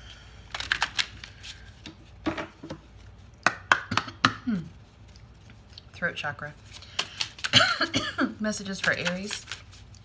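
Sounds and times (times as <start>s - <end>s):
cards being shuffled: 0.5s - 3.3s, 6.6s - 7.6s, 8.4s - 10.0s.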